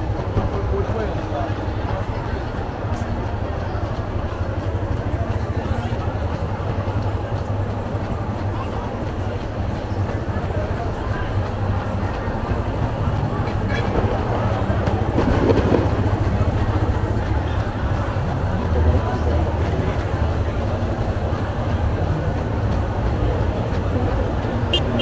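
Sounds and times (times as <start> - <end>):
low hum of slow traffic: 0.0 - 25.0
many people talking: 0.0 - 25.0.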